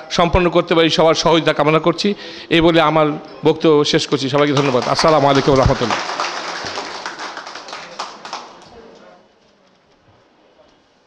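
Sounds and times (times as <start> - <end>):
audience applauding: 4.4 - 8.9.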